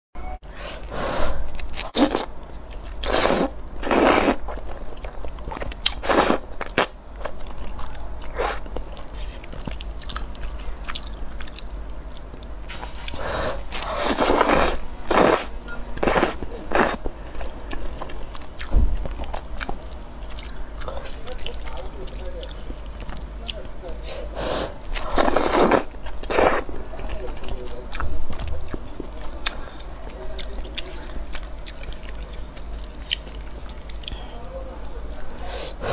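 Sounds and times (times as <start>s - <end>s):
wet chewing: 0.8s - 24.1s, 24.8s - 35.3s
noodle slurping: 3.0s - 4.4s, 13.4s - 17.0s, 25.0s - 26.6s.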